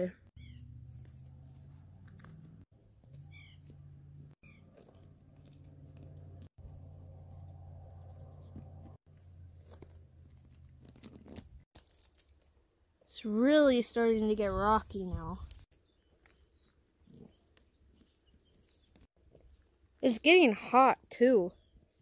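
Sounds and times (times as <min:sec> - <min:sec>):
small birds chirping: 0:00.0 - 0:11.7, 0:12.3 - 0:22.0.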